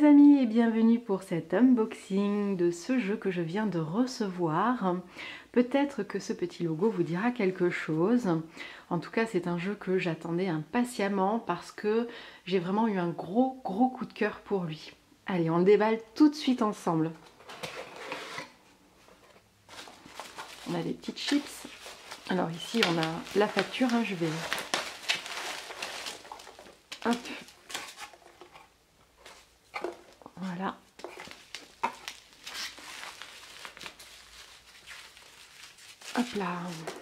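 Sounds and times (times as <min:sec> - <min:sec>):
cardboard lid scraping: 0:17.4 - 0:20.7
packing rustling: 0:19.2 - 0:37.0
bubble wrap crinkling: 0:19.7 - 0:37.0.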